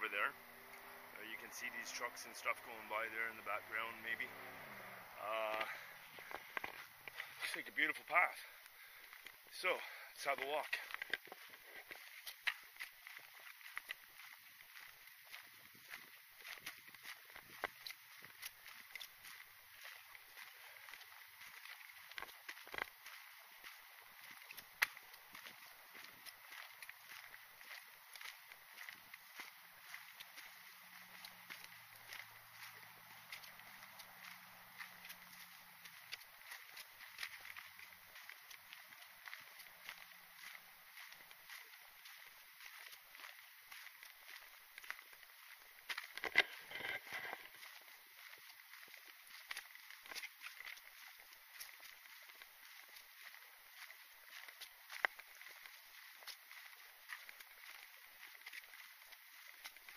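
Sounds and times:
footsteps on dry leaves: 0.0s - 59.9s.

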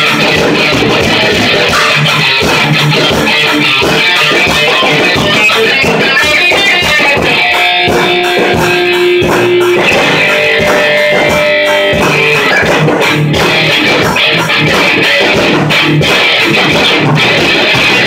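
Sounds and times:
drum kit beat: 0.0s - 18.0s
electric guitar: 0.0s - 18.0s.

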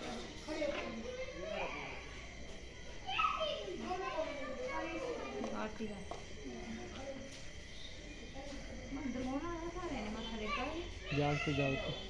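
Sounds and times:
children's voices: 0.0s - 12.0s
voices talking: 0.0s - 12.0s.

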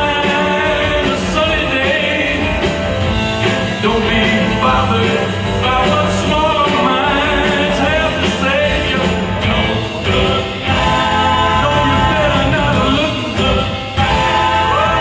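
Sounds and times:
bass guitar: 0.0s - 15.0s
drums: 0.0s - 15.0s
person singing: 0.0s - 15.0s.

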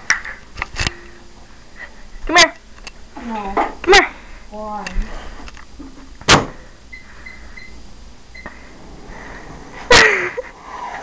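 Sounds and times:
microwave keypad beeps: 6.9s - 8.5s.

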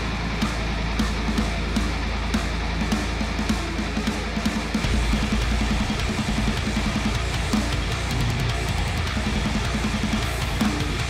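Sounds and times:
bass guitar: 0.0s - 11.0s
distorted electric guitars riffing: 0.0s - 11.0s
drum kit with crashing cymbals: 0.0s - 11.0s.

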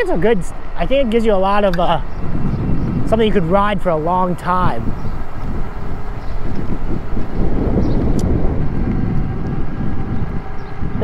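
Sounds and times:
tyres rolling on asphalt: 0.0s - 11.0s
wind on microphone: 0.0s - 11.0s.

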